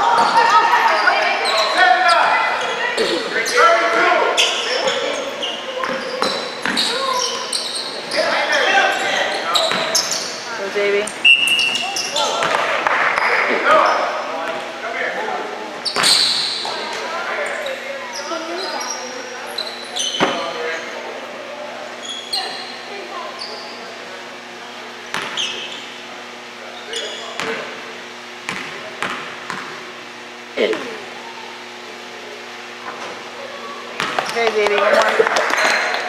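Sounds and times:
sneakers squeaking: 0.0 - 14.7, 15.8 - 21.1, 21.9 - 31.8, 32.6 - 36.0
referee's whistle: 11.2 - 12.3.

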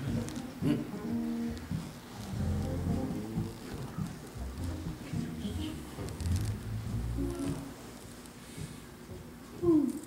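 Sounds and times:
electric keyboard slow music: 0.0 - 8.0.

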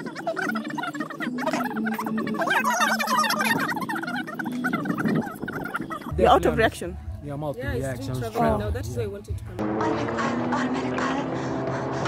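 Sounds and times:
turkey gobbling: 0.0 - 6.2.

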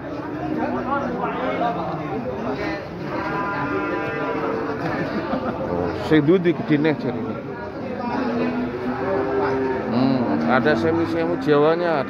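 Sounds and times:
bull mooing: 3.0 - 4.8, 8.2 - 12.0.

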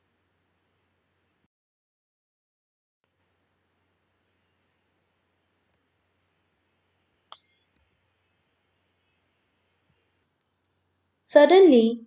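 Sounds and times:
computer mouse click: 7.3 - 7.6.

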